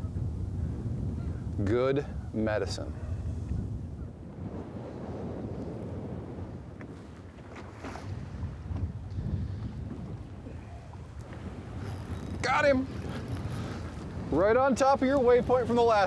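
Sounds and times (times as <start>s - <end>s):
wind on microphone: 0.0s - 16.0s
water lapping against boat hull: 6.5s - 16.0s.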